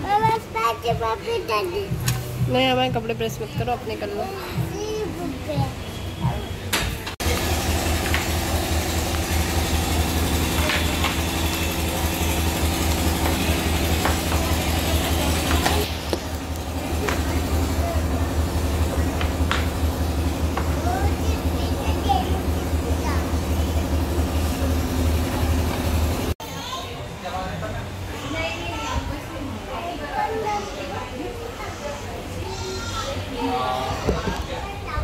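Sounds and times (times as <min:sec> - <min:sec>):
low mechanical hum: 0:00.0 - 0:35.0.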